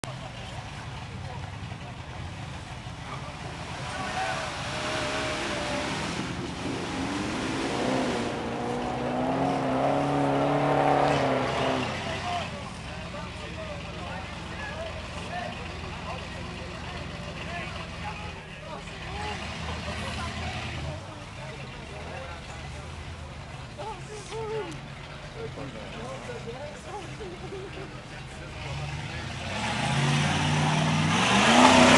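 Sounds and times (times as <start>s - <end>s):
people talking: 0.0s - 6.8s, 11.0s - 29.7s
buggy engine revving: 0.0s - 23.8s, 27.6s - 31.9s.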